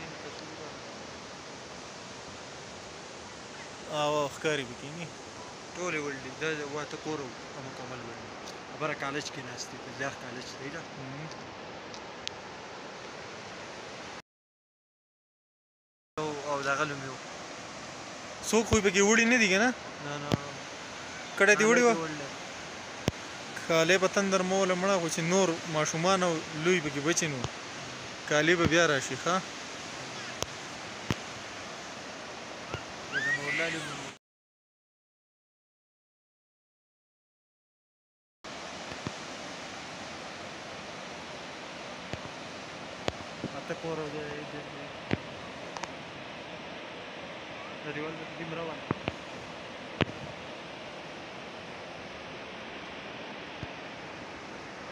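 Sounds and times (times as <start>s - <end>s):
river water over stones: 0.0s - 14.2s, 16.2s - 34.2s, 38.5s - 54.9s.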